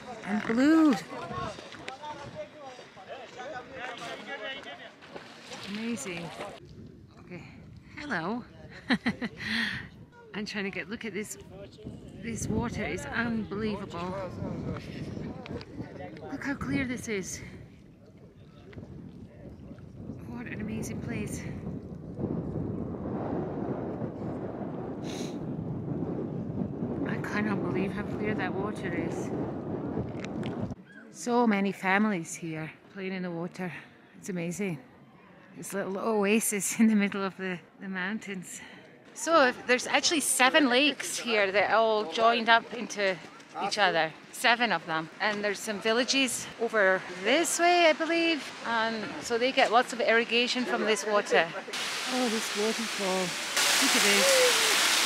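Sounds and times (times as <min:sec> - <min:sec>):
wind buffeting microphone: 0:00.0 - 0:02.9, 0:05.9 - 0:30.8
overlapping chatter of voices: 0:00.0 - 0:07.1, 0:33.9 - 0:54.8.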